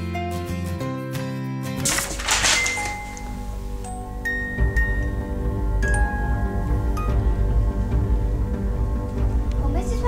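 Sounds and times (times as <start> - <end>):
paper sheets blown to floor: 1.8 - 3.7.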